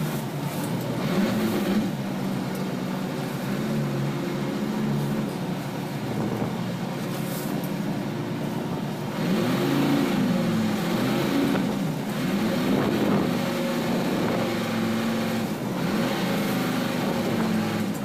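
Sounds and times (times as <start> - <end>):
boat engine running: 0.0 - 18.0
rushing sea: 0.0 - 18.0
wind: 0.0 - 18.0.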